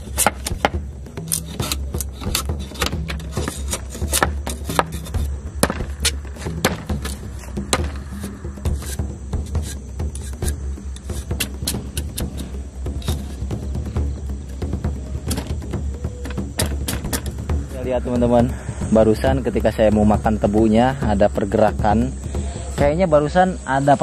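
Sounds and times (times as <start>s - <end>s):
machete scraping sugarcane rind: 0.0s - 13.6s
background music: 0.0s - 24.0s.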